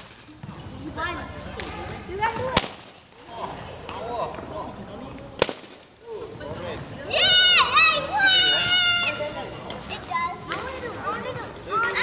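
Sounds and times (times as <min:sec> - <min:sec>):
children chattering: 0:00.3 - 0:02.7, 0:06.0 - 0:12.0
child shouting: 0:07.1 - 0:09.5.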